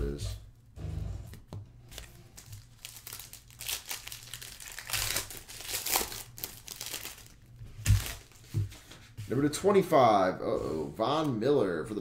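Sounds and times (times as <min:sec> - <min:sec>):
foil wrapper crinkling: 0:02.0 - 0:08.5.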